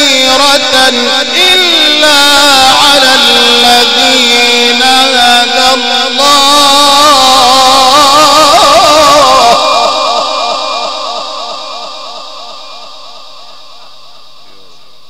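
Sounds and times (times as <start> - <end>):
long echo: 0.0 - 15.0
man reciting melodically into microphone: 0.0 - 15.0.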